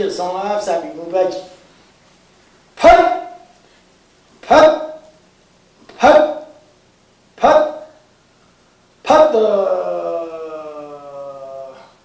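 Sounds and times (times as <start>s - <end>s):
man shouting sharply: 2.8s - 3.5s, 4.4s - 5.0s, 5.9s - 6.6s, 7.4s - 8.0s, 9.0s - 11.8s.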